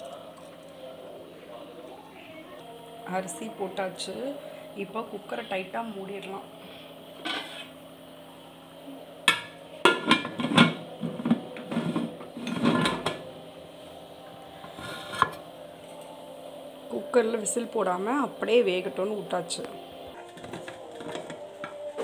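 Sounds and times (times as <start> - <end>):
metal lid clanking and scraping: 7.2 - 7.8, 9.3 - 13.3, 14.6 - 15.4, 20.2 - 22.0.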